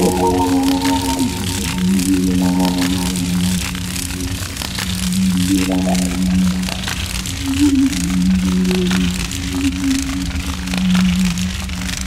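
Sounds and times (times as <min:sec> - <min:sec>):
higher synth chord: 0:00.0 - 0:03.8
buzzing low synth tone: 0:00.0 - 0:09.8
crackling noise layer: 0:00.0 - 0:12.0.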